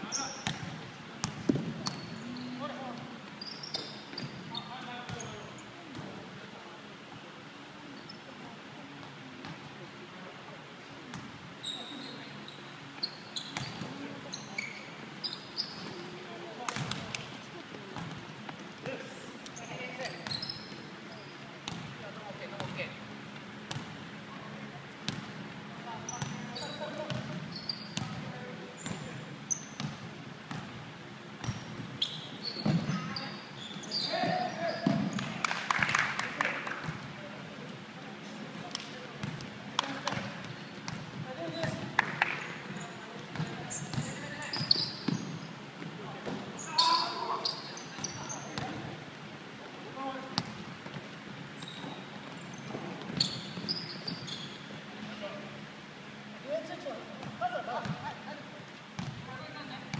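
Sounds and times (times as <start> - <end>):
sneakers squeaking: 0.0 - 6.2, 7.9 - 8.4, 11.1 - 23.1, 23.7 - 30.8, 31.4 - 35.4, 38.2 - 49.0, 50.0 - 55.4, 59.0 - 59.9
players calling out: 46.6 - 48.6.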